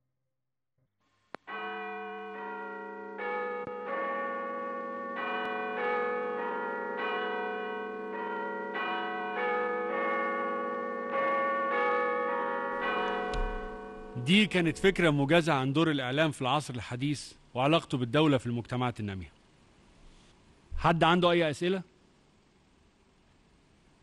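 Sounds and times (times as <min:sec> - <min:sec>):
clock tower bells chiming: 0:01.5 - 0:15.4.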